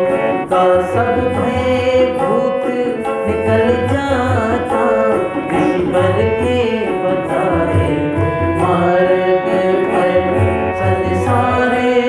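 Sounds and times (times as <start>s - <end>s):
harmonium chords: 0.0s - 12.0s
man singing: 0.0s - 12.0s.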